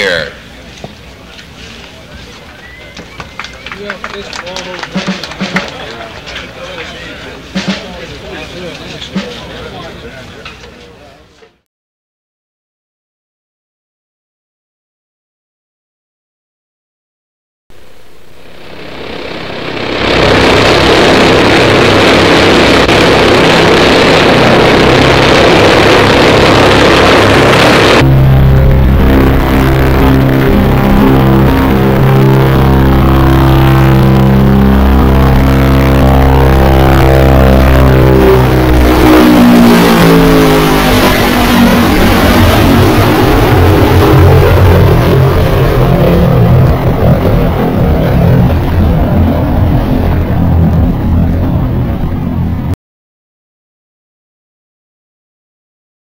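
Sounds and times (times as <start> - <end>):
aircraft engines roaring: 0.0 - 11.5, 17.8 - 52.7
deep droning of propellers: 17.8 - 52.8.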